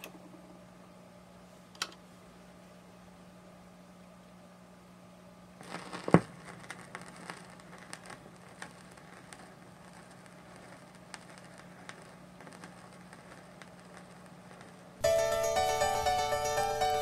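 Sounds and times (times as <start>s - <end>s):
steady low hum: 0.0s - 17.0s
vinyl surface hiss and crackles: 5.6s - 17.0s
stylus thump on record: 5.7s - 6.5s.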